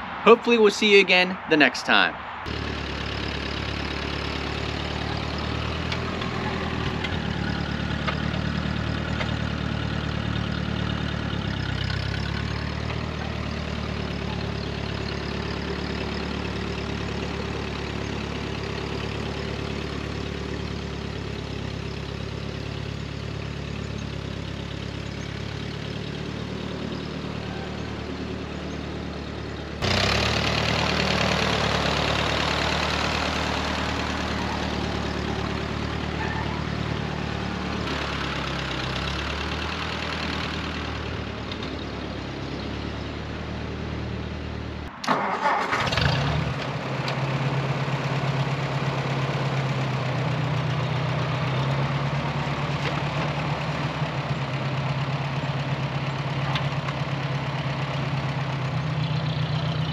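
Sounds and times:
tractor engine running: 0:02.3 - 0:59.9.

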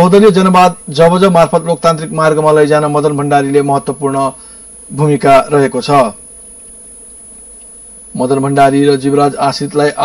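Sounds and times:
man narrating: 0:00.0 - 0:06.2, 0:08.2 - 0:10.0
low buzz: 0:00.0 - 0:10.0.

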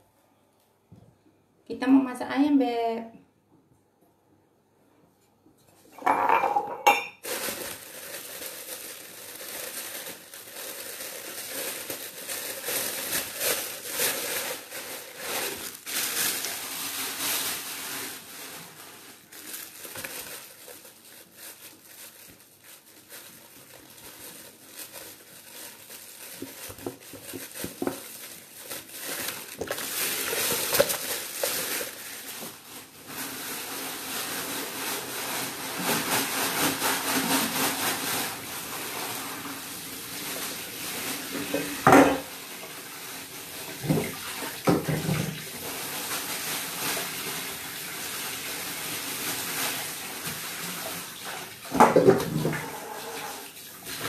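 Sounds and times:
plastic bag crinkling: 0:06.6 - 0:54.0.

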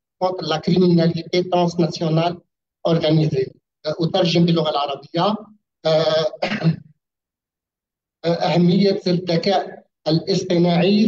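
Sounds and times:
man speaking over video call: 0:00.0 - 0:06.9, 0:08.0 - 0:11.0.

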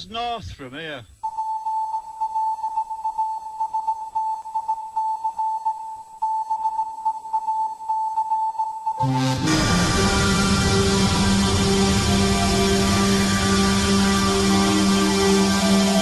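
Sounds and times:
music: 0:01.2 - 0:16.0
fluttering high electronic tone: 0:09.0 - 0:16.0.

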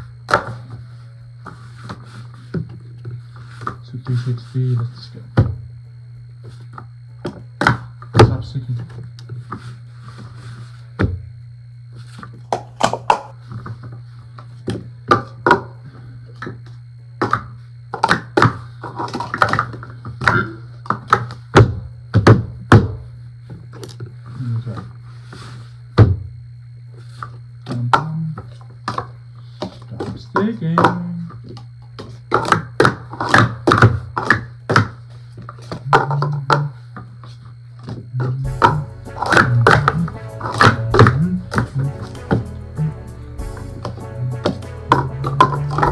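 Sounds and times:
plastic cups clacking: 0:12.5 - 0:13.3, 0:17.2 - 0:21.4, 0:27.7 - 0:36.8, 0:37.8 - 0:42.4, 0:43.8 - 0:45.9.

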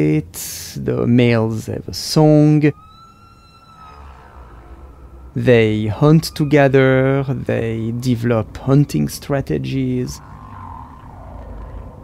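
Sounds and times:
faint low rumble: 0:00.0 - 0:12.0
faint high tone: 0:02.6 - 0:07.5.

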